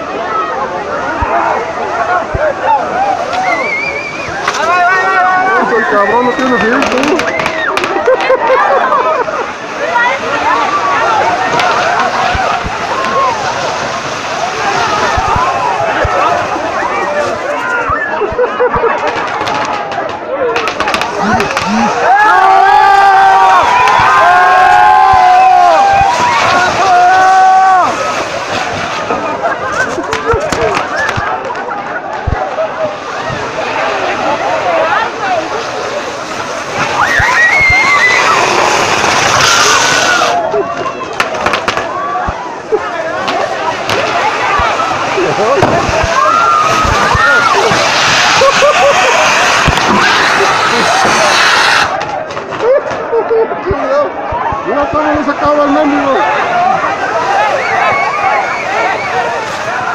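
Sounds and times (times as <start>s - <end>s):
crowd yelling and screaming: 0.0s - 59.9s
fireworks sparks hissing: 3.2s - 8.6s, 20.6s - 24.4s, 32.2s - 40.5s, 41.1s - 41.9s, 43.1s - 52.6s
rockets popping: 3.3s - 8.5s, 9.8s - 18.0s, 18.7s - 22.3s, 23.3s - 34.2s, 34.9s - 40.5s, 41.1s - 42.4s, 43.2s - 53.1s.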